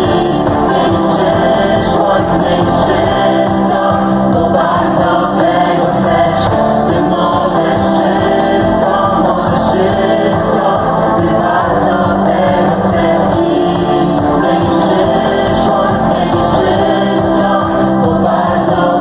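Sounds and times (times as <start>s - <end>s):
group singing into microphones: 0.0s - 19.0s
live band playing: 0.0s - 19.0s.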